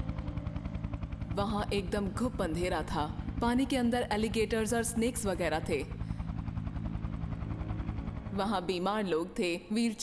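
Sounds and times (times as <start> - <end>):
helicopter rotor beating: 0.0 - 10.0.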